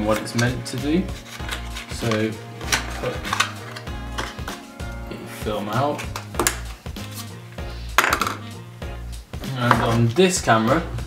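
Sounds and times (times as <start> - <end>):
film cassette taken from canister: 1.2 - 4.6.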